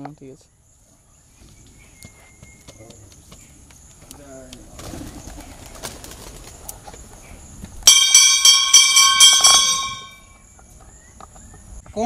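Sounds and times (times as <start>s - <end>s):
temple bell rung rapidly: 7.9s - 10.3s.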